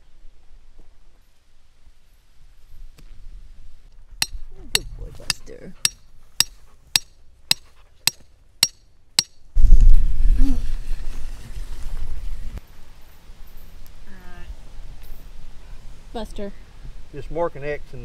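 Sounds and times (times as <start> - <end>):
hammer striking metal stake: 4.2 - 9.4.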